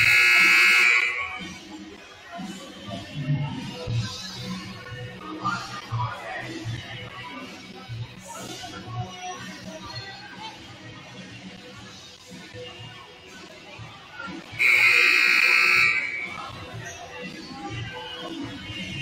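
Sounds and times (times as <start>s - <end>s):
scoreboard buzzer: 0.0s - 1.4s, 14.6s - 16.4s
background music over speakers: 0.0s - 19.0s
crowd chatter: 0.0s - 19.0s.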